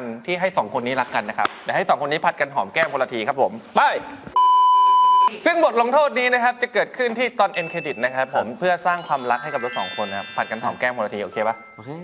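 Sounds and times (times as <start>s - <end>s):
man speaking: 5.4s - 12.0s.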